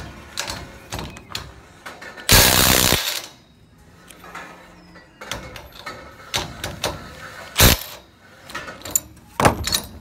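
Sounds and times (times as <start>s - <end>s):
impact wrench running: 2.3s - 3.2s.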